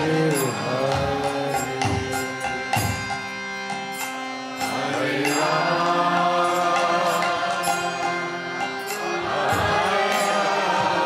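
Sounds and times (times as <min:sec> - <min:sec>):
harmonium sustained chords: 0:00.0 - 0:11.0.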